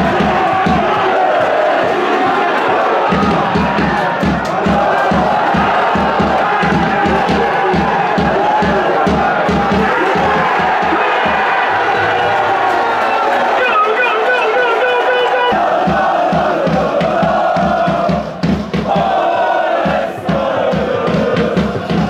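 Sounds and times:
crowd chanting and cheering: 0:00.0 - 0:22.0
low drum beat: 0:03.1 - 0:12.1.

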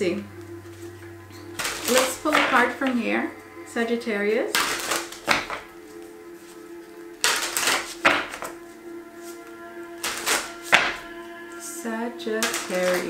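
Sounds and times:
soft background music: 0:00.0 - 0:13.0
cards shuffling: 0:07.2 - 0:08.6, 0:10.0 - 0:11.0.

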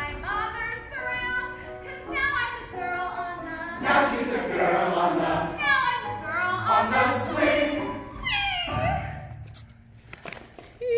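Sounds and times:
ensemble singing: 0:02.6 - 0:08.2.

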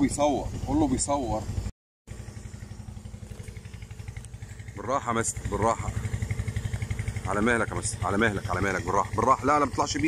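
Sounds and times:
small engine chugging: 0:00.0 - 0:10.0.

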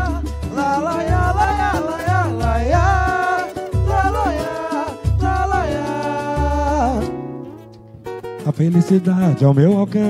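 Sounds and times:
samba band playing: 0:00.0 - 0:07.1
wordless sung melody: 0:00.0 - 0:10.0.

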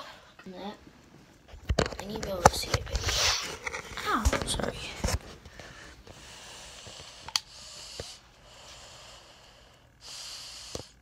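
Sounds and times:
breathing close to microphone: 0:04.8 - 0:11.0.

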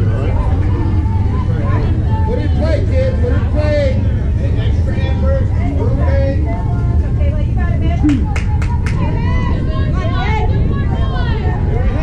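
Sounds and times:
people talking and calling out: 0:00.0 - 0:12.0
steady low rumble: 0:00.0 - 0:12.0.

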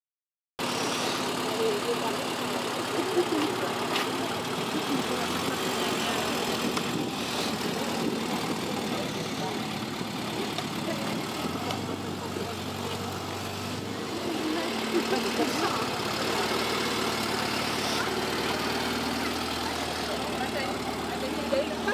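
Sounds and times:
car engine idling: 0:00.6 - 0:21.9
background voices: 0:00.7 - 0:21.9.

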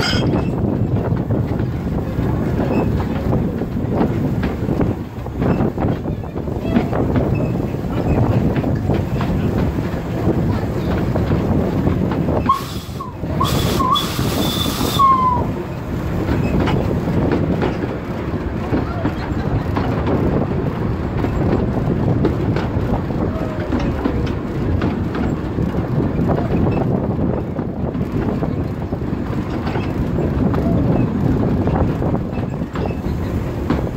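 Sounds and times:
steam locomotive running: 0:00.0 - 0:33.9
train wheels clattering over joints: 0:00.0 - 0:33.9.

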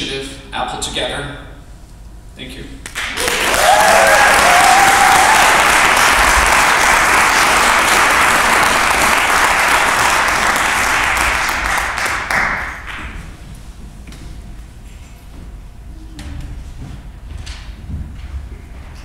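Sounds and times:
audience applauding: 0:02.9 - 0:13.2.

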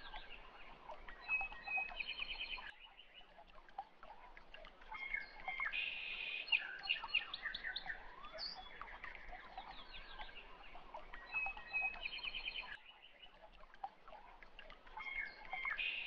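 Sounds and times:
birds chirping and trilling: 0:00.0 - 0:03.4, 0:04.9 - 0:13.4, 0:14.8 - 0:16.0.

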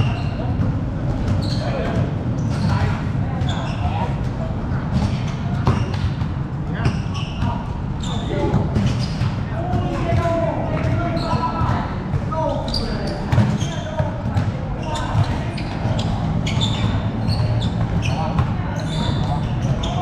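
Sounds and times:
basketball bouncing on court: 0:00.0 - 0:20.0.

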